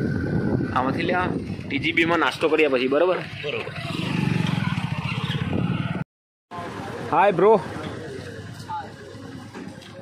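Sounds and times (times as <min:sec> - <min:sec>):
motorcycle engine running: 0:03.2 - 0:06.0.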